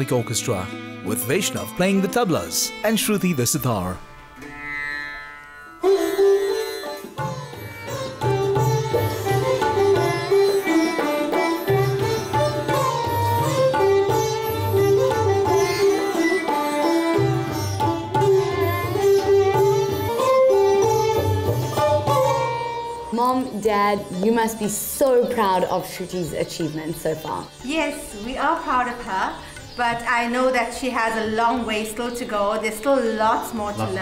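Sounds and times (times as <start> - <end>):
sitars and violin playing: 0.0 - 30.2
tabla strokes: 5.8 - 23.6.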